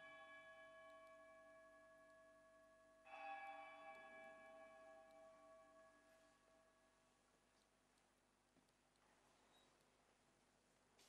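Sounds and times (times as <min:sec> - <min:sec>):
faint bell ringing: 0:00.0 - 0:07.2.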